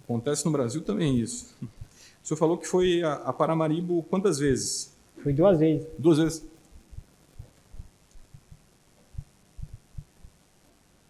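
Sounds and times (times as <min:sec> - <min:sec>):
faint room hiss: 0:00.0 - 0:11.0
soft dull thuds: 0:06.8 - 0:10.4.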